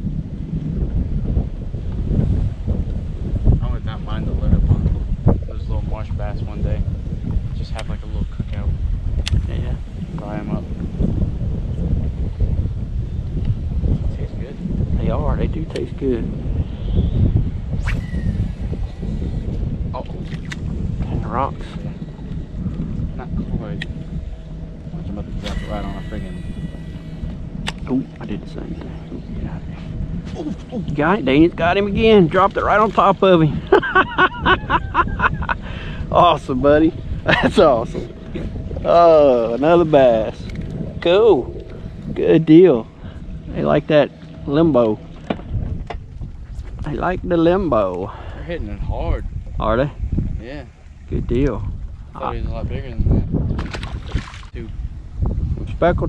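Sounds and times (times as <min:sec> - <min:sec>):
wind buffeting microphone: 0:00.0 - 0:56.0
man speaking: 0:09.5 - 0:10.7, 0:21.1 - 0:22.0, 0:23.2 - 0:23.8, 0:24.9 - 0:26.6, 0:27.8 - 0:29.7, 0:30.4 - 0:33.6, 0:38.8 - 0:42.9, 0:43.5 - 0:45.0, 0:46.8 - 0:53.2.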